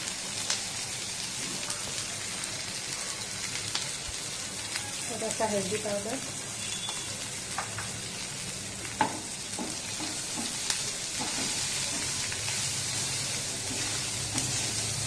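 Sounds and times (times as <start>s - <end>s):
chillies sizzling in a pan: 0.0s - 15.0s
spatula knocking on pan: 9.0s - 10.6s, 11.2s - 11.6s
spatula scraping pan: 13.5s - 14.9s.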